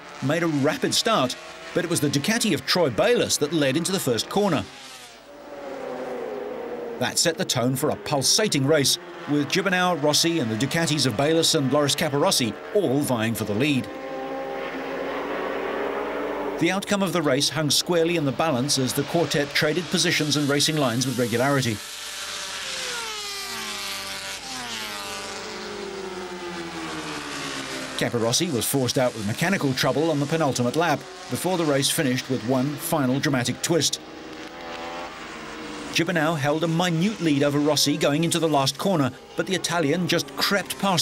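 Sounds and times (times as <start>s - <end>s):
racing motorcycle engines: 0.0s - 41.0s.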